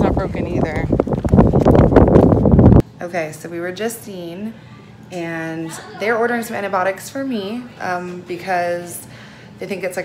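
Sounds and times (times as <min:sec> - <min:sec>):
wind buffeting microphone: 0:00.0 - 0:02.8.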